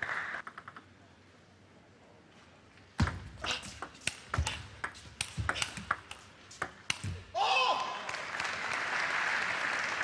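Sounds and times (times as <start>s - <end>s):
table tennis ball hits: 3.0s - 7.2s.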